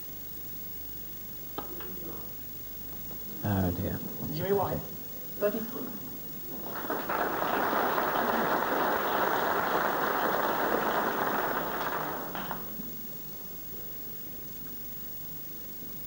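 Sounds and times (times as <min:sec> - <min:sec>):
audience applauding: 0:06.5 - 0:13.2.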